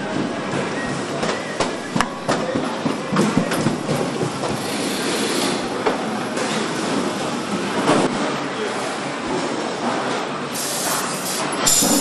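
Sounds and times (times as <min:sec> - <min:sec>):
factory machine clatter and hiss: 0:00.0 - 0:12.0.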